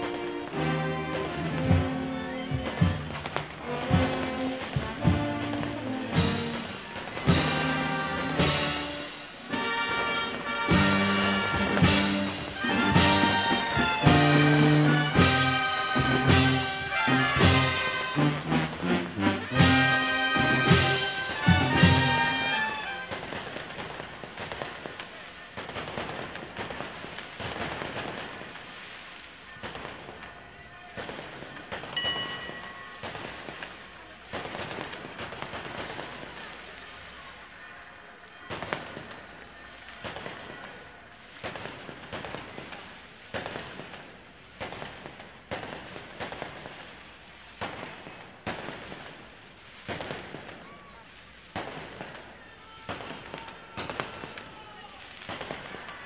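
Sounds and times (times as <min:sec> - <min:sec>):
fireworks bangs: 0:00.0 - 0:56.0.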